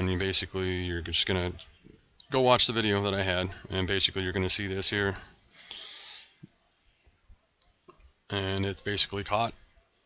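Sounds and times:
breathy hiss: 5.4s - 6.5s.

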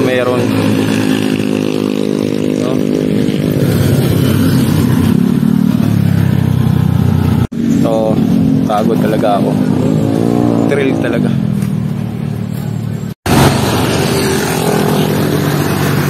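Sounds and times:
motorcycle engine drone: 0.0s - 16.0s
scooter passing close by: 13.3s - 16.0s.

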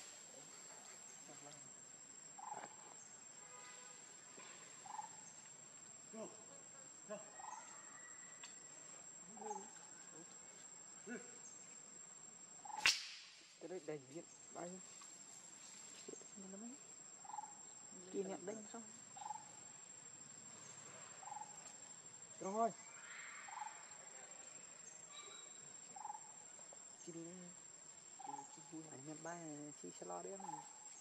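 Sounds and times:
crickets trilling: 0.0s - 31.0s
short insect chirp: 0.0s - 31.0s.

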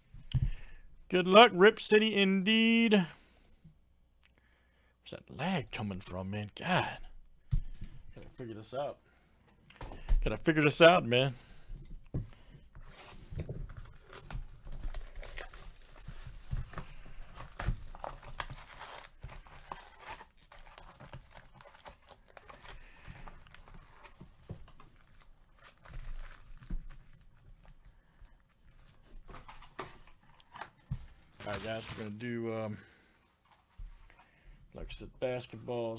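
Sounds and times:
foil packs rustling: 13.1s - 27.9s, 28.5s - 33.4s
plastic shrink-wrap tearing: 13.8s - 16.6s, 17.2s - 24.2s, 31.2s - 32.2s.

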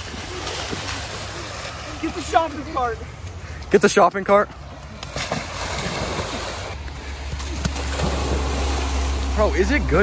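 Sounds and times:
water splashing as people wade: 0.0s - 10.0s.

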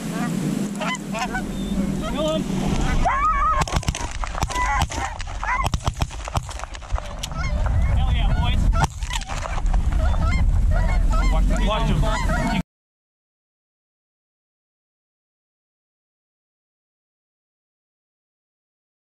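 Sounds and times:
geese honking: 0.0s - 12.6s
wind rumble on microphone: 0.0s - 12.6s
shotgun shots: 3.6s - 7.2s, 8.8s - 9.6s.

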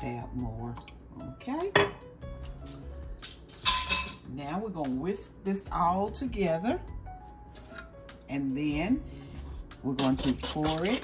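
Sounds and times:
kitchenware clink: 3.2s - 4.2s.

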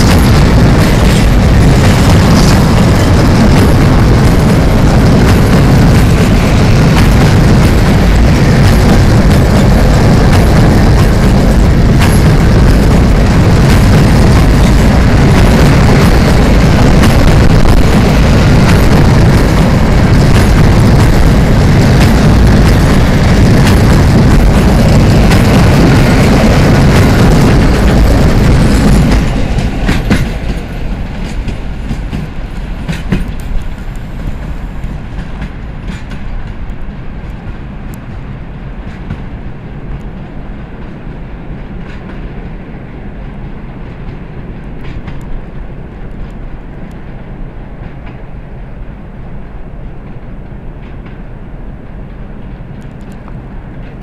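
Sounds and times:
clacks over rail joints: 0.0s - 39.3s, 40.8s - 42.6s, 43.3s - 47.2s, 47.8s - 48.3s, 50.0s - 51.3s
freight train rolling past: 0.0s - 54.0s.

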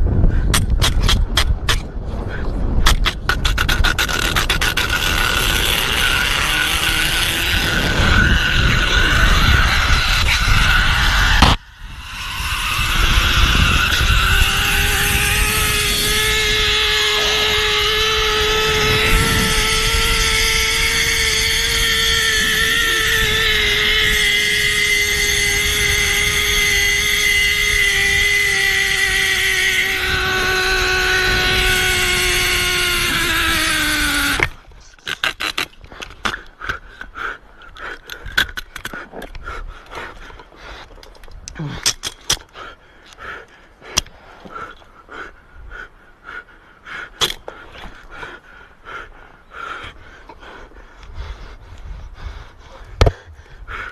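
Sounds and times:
wind rushing: 0.0s - 24.4s
zip-line pulley whine: 2.9s - 36.6s.

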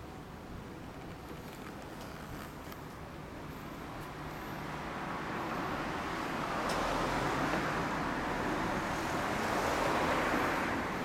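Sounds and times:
passing vehicles: 0.0s - 11.0s.

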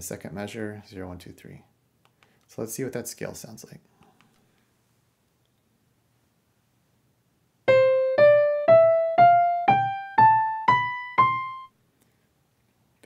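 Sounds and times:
piano playing ascending scale: 7.7s - 11.7s.

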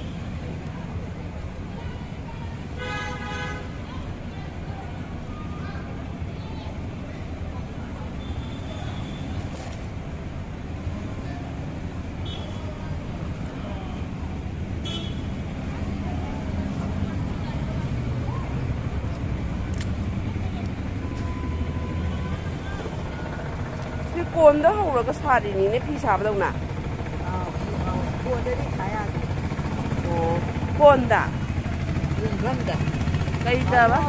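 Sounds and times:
faint indistinct voices: 0.0s - 34.0s
street traffic rumble: 0.0s - 34.0s.

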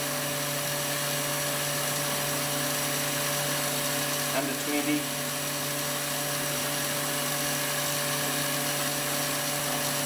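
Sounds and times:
vacuum pump humming: 0.0s - 10.0s.

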